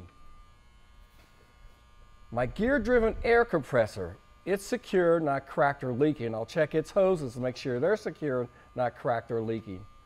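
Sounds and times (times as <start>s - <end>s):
low hum: 0.0s - 10.0s
thin electrical buzz: 0.0s - 10.0s.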